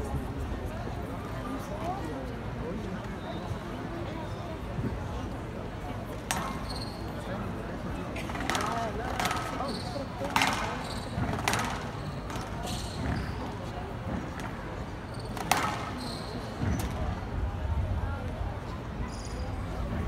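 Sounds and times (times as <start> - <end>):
shoes squeaking on court floor: 6.3 - 7.3, 8.2 - 17.2, 19.1 - 19.6
squash ball smacking off rackets: 8.2 - 9.6, 10.3 - 13.2, 15.4 - 16.0.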